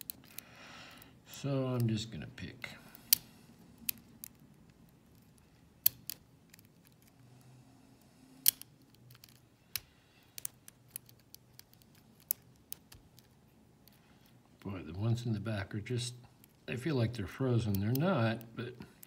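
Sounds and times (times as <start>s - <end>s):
lock pick clicking in a lock: 8.4s - 14.0s.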